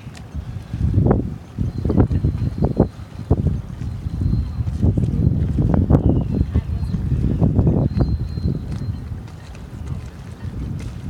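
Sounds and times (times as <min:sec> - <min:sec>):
boat engine low drone: 0:00.0 - 0:11.0
wind buffeting microphone: 0:00.0 - 0:11.0.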